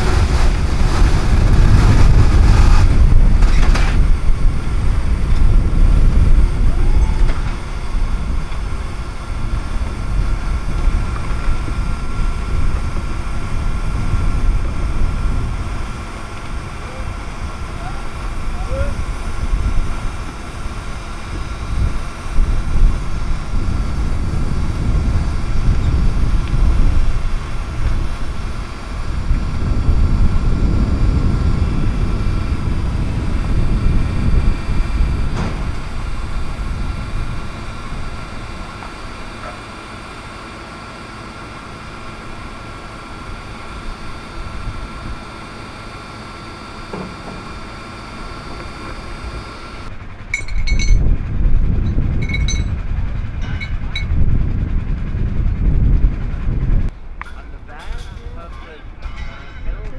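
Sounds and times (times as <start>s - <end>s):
forklift engine idling: 0.0s - 59.9s
wind buffeting microphone: 0.0s - 59.9s.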